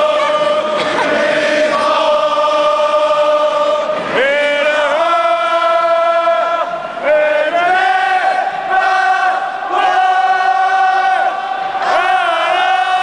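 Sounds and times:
crowd singing a chant: 0.0 - 13.0.

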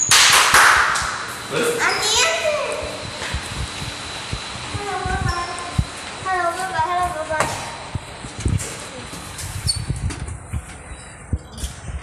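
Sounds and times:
loud hissing burst: 0.9 - 9.7
child's voice: 1.8 - 3.0, 4.7 - 7.8.

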